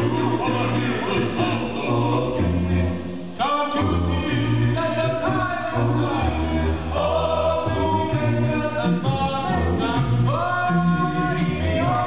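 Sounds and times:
male a cappella group singing: 0.0 - 12.0.

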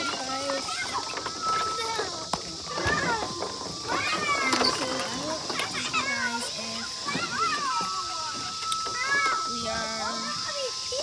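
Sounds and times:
children calling and chattering: 0.0 - 11.0
steady high hiss: 0.0 - 11.0.

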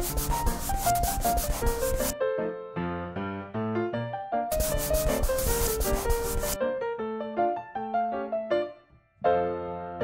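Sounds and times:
paper rustling scrape: 0.0 - 2.1, 4.5 - 6.6
light piano music: 0.0 - 10.0.

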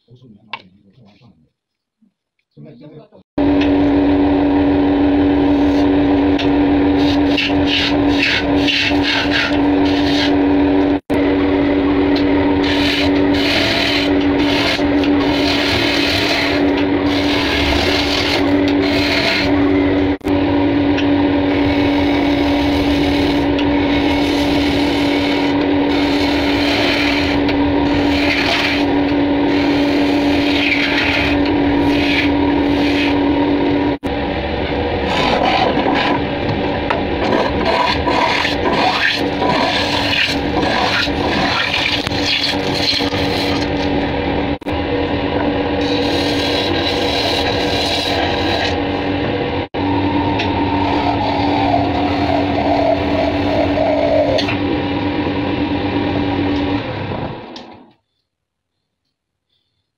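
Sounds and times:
wood lathe humming: 3.4 - 56.7
turning tool scraping wood: 6.9 - 10.4, 12.6 - 19.6, 21.5 - 33.2, 35.0 - 36.2, 37.2 - 43.9, 45.8 - 49.0.

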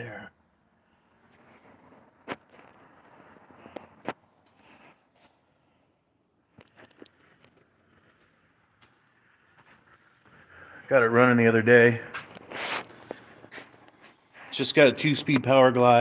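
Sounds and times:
footsteps scuffing on floor: 4.4 - 5.5, 12.1 - 14.5.

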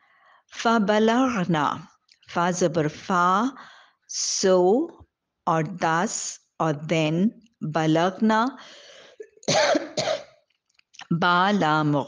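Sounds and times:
woman coughing: 9.2 - 10.4.

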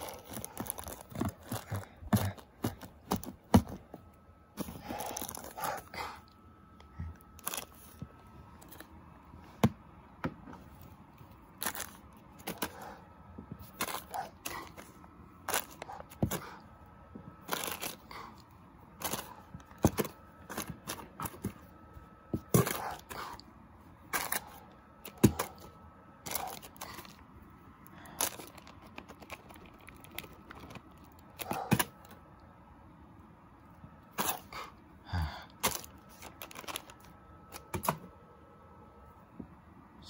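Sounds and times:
plastic wrapper crinkling: 28.2 - 31.4, 35.6 - 37.7.

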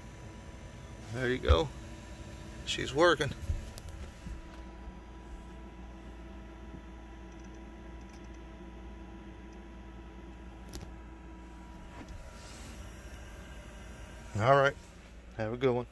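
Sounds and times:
diesel air heater blower humming: 0.0 - 15.9
faint steady tones: 0.0 - 15.9.

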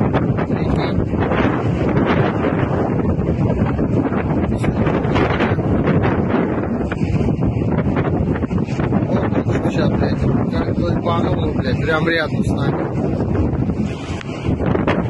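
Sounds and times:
wind blowing across microphone: 0.0 - 15.0.

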